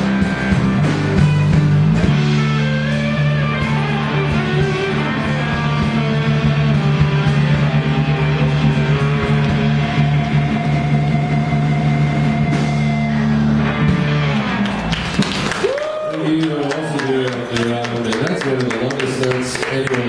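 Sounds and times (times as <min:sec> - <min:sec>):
live rock band chord: 0:00.0 - 0:15.5
audience voices: 0:03.8 - 0:20.0.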